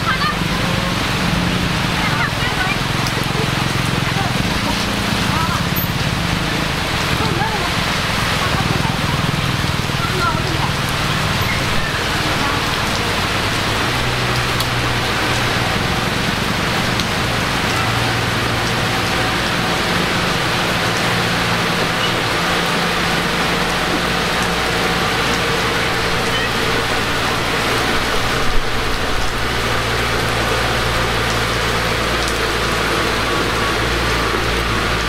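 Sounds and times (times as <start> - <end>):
bulldozer diesel engine: 0.0 - 35.0
bulldozer pushing dirt and stone: 0.0 - 35.0
rain hissing: 0.0 - 35.0.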